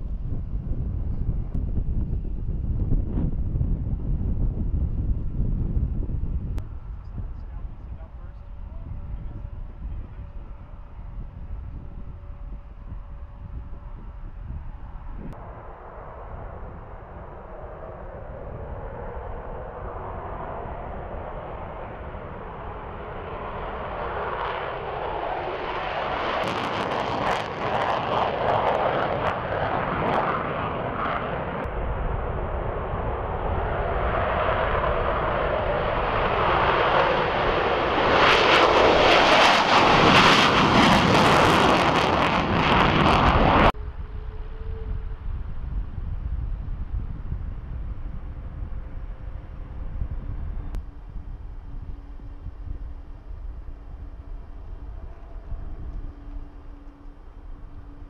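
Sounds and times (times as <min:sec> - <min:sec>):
jet engines at takeoff power: 0:00.0 - 0:58.0
steady low rumble: 0:00.0 - 0:58.0.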